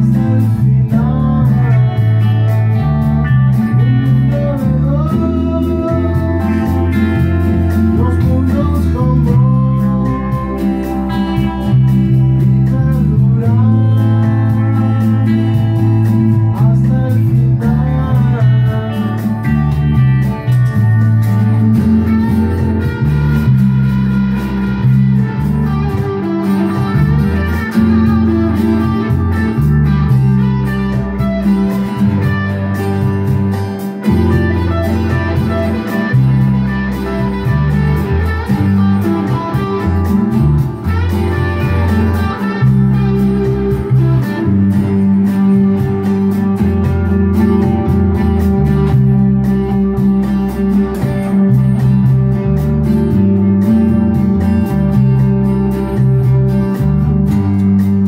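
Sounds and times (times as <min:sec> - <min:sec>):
electric bass guitar: 0:00.0 - 0:58.0
electric guitars playing: 0:00.0 - 0:58.0.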